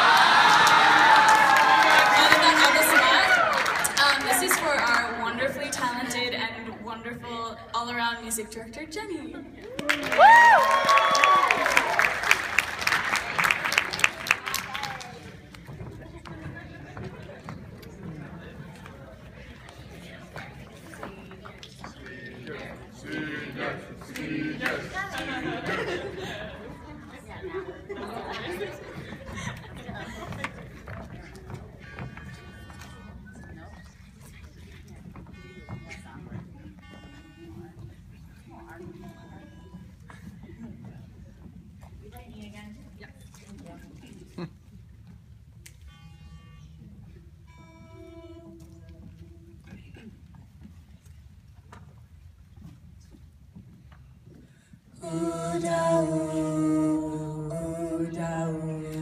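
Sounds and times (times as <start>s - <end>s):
voices chattering in a hall: 0.0s - 59.0s
footsteps on wooden stage: 15.0s - 22.9s, 28.5s - 42.8s, 47.3s - 55.0s.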